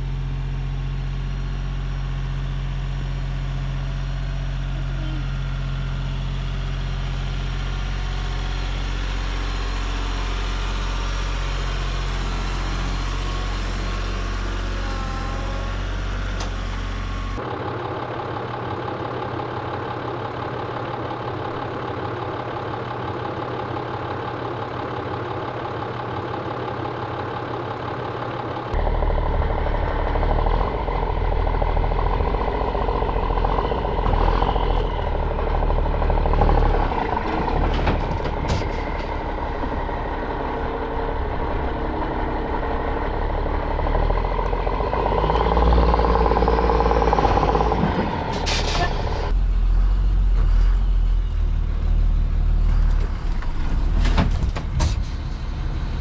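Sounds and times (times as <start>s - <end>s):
bus engine idling: 0.0s - 53.6s
tractor diesel engine running: 0.0s - 56.0s.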